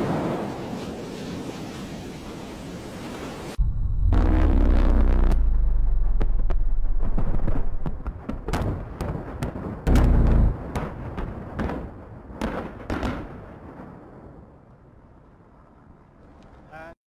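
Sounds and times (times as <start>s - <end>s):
deep boom: 3.6s - 8.8s, 9.9s - 10.9s
explosion rumble: 3.6s - 11.4s
large explosions: 3.6s - 11.9s.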